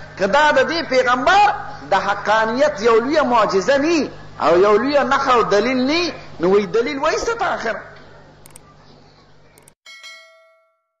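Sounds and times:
quick clicks: 8.4s - 8.7s, 9.6s - 9.8s
bell ding: 9.9s - 11.0s.

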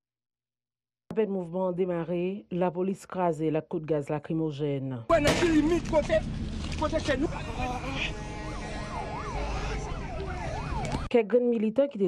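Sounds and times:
low rumble: 5.1s - 11.1s
emergency vehicle siren: 6.2s - 11.1s.

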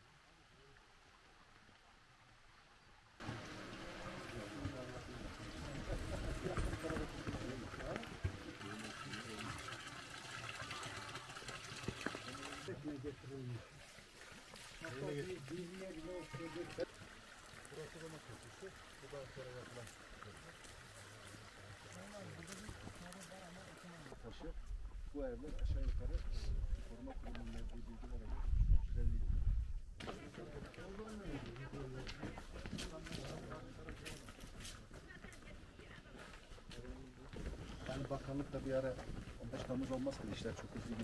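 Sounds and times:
fountain water splashing: 3.2s - 24.2s.

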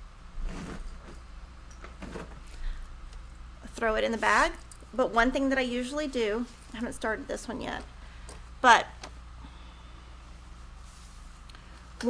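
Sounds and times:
low steady hum: 0.0s - 12.0s
bag rustling and handling: 0.3s - 5.4s.

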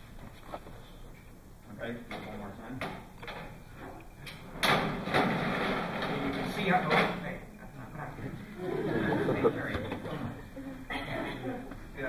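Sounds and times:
balls rolling on metal tracks: 4.6s - 7.2s.

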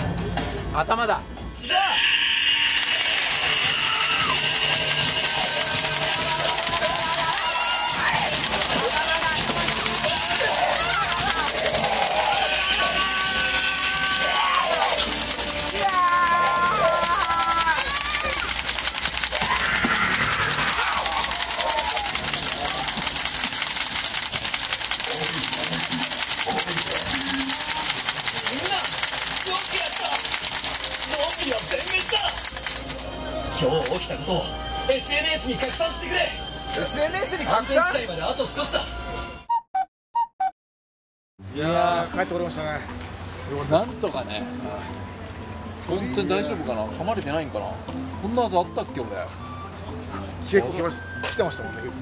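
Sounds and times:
long held shouts: 1.6s - 4.9s, 7.0s - 8.3s, 10.1s - 15.2s, 15.8s - 18.5s, 19.3s - 22.2s
people calling out: 1.6s - 23.4s, 25.0s - 32.4s
toy guns clicking: 2.8s - 33.0s
music: 2.8s - 39.6s, 41.4s - 52.0s.

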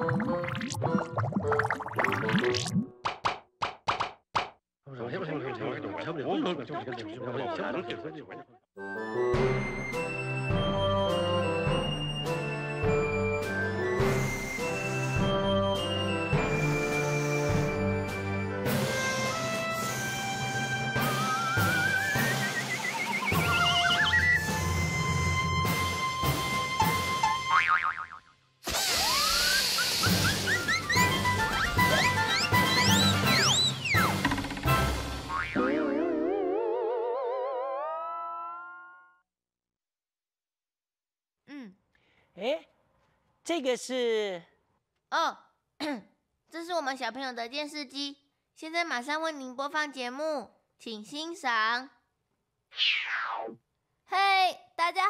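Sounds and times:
rising whistle-like glide: 20.4s - 25.2s
cartoon music: 21.0s - 25.8s, 29.0s - 39.2s
wobbling boing: 35.3s - 38.2s.

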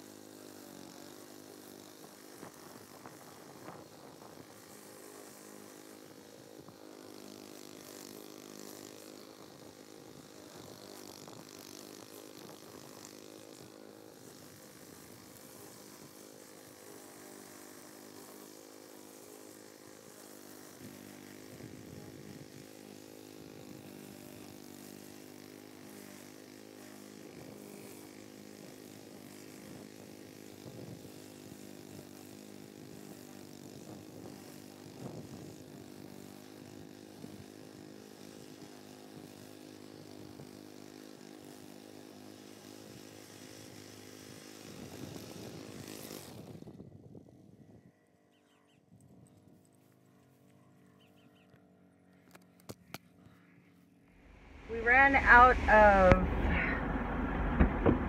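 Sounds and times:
faint lawn mower engine: 0.0s - 58.0s.

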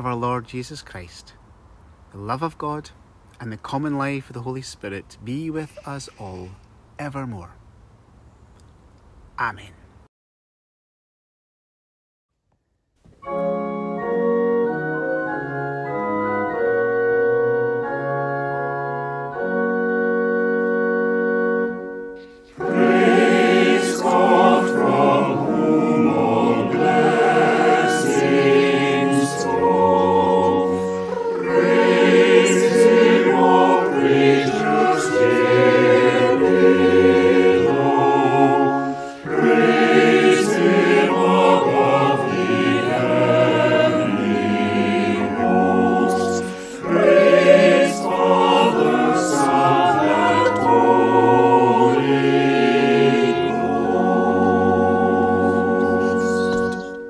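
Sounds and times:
choir singing: 22.5s - 57.0s.

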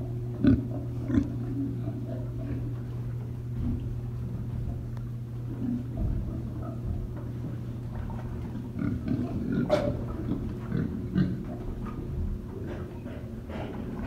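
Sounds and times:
pigs grunting: 0.0s - 14.0s
steady low hum: 0.0s - 14.0s.

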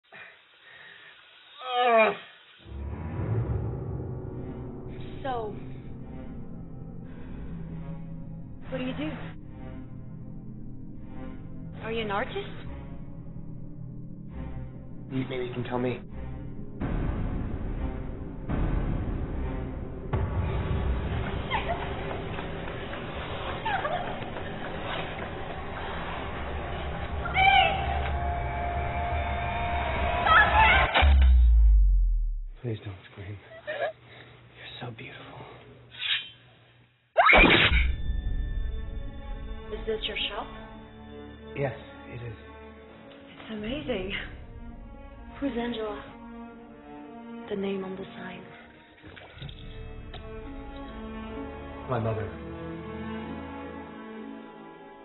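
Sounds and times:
faint hiss: 0.0s - 2.7s
deep drone: 2.6s - 32.6s.

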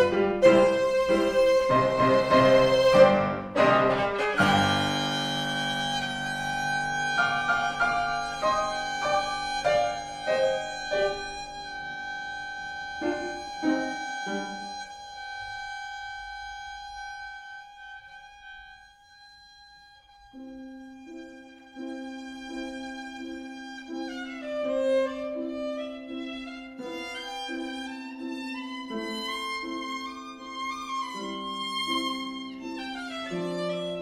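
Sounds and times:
grand piano: 0.0s - 18.5s, 20.2s - 34.0s
violin: 0.0s - 34.0s.

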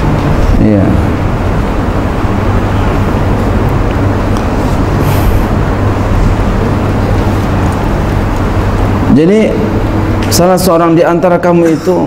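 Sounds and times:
low rumble: 0.0s - 10.3s.

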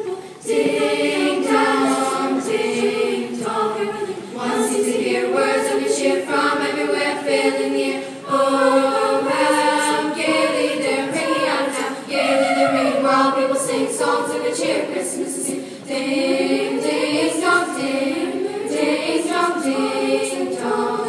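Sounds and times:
children's chorus singing: 0.0s - 21.0s.

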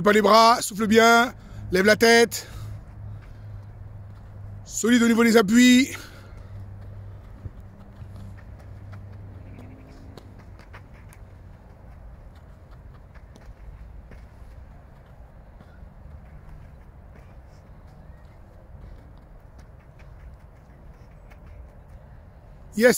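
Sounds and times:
child's footfalls and taps: 6.3s - 22.1s.

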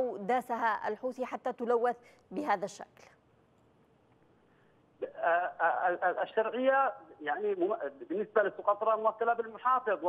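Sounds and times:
man speaking over a telephone: 5.0s - 10.0s.

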